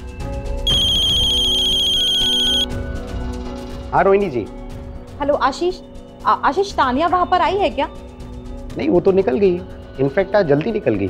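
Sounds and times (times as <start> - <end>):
background music: 0.0 - 11.0
phone ringtone trill: 0.7 - 2.7.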